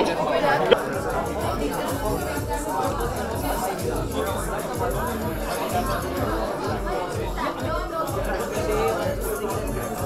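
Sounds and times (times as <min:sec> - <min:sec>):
crowd chatter in a hall: 0:00.0 - 0:10.0
background music with low beat: 0:00.6 - 0:10.0.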